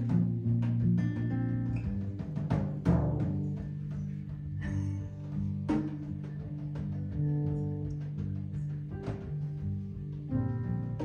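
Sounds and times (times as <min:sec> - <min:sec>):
acoustic guitar: 0:00.0 - 0:11.0
drum kit: 0:00.0 - 0:11.0
sharp drum strikes: 0:00.0 - 0:11.0
upright double bass: 0:00.0 - 0:11.0.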